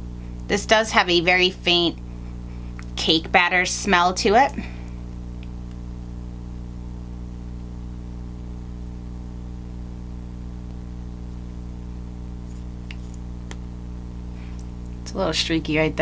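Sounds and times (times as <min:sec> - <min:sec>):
electrical hum with buzz: 0:00.0 - 0:16.0.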